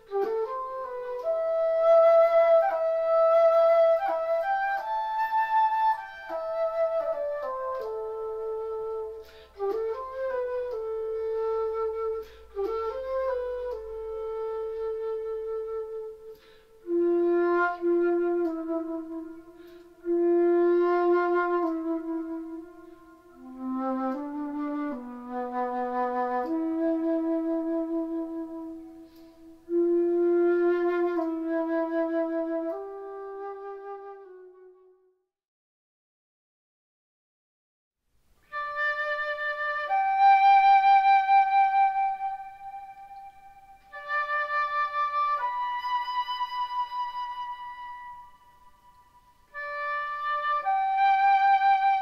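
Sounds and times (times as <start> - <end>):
solo flute playing slow melody: 0.0 - 35.2, 38.4 - 52.0.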